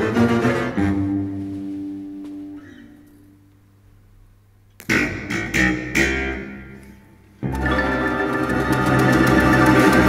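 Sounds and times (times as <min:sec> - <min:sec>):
plucked string ensemble: 0:04.8 - 0:10.0.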